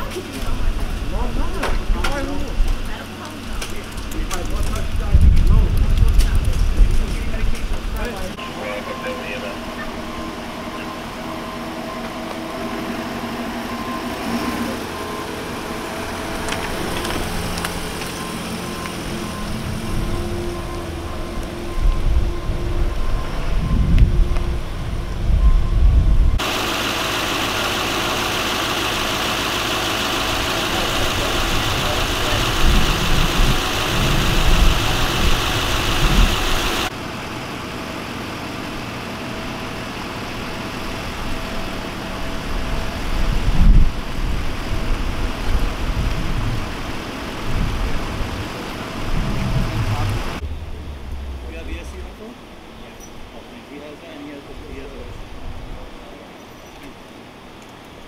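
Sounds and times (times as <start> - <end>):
low rumbles: 0.0 - 8.4, 15.2 - 37.0, 42.2 - 53.7
emergency vehicles idling: 0.0 - 56.4.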